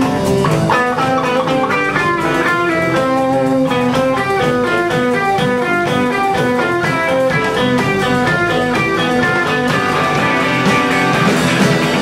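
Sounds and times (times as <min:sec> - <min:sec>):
band music with guitar: 0:00.0 - 0:12.0.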